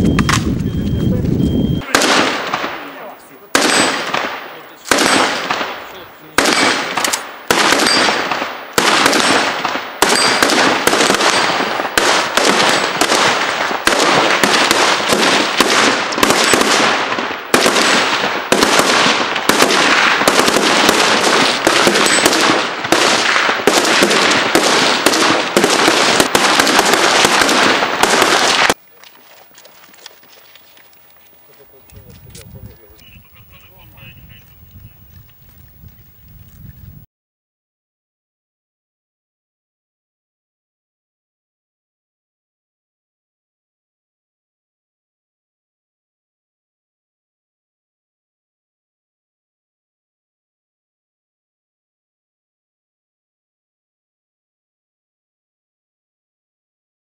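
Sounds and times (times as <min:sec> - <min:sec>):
gunshots with ringing echo: 0:01.8 - 0:28.8.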